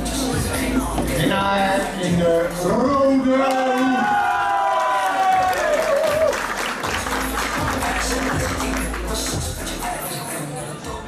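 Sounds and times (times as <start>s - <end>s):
low bass beat: 0.0s - 2.7s
music with sliding sung note: 0.0s - 2.7s, 6.9s - 11.0s
crowd applause: 3.7s - 9.5s.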